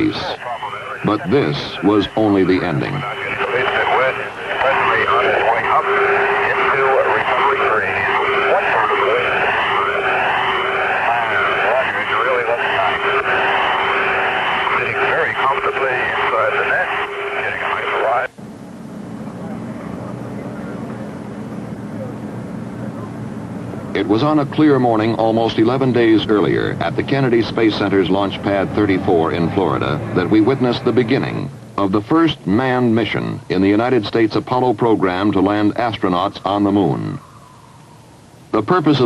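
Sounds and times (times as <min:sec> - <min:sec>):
quiet steady hum: 0:00.0 - 0:39.0.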